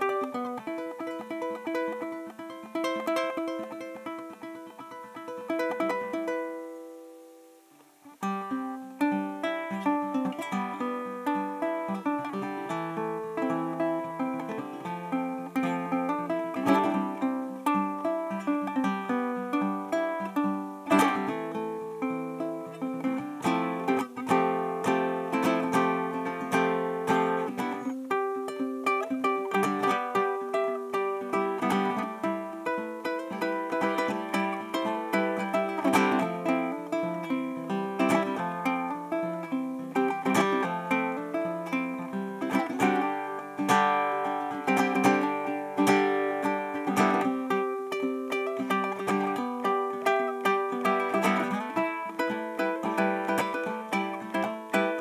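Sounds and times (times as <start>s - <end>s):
ukulele played fingerstyle: 0.0s - 55.0s.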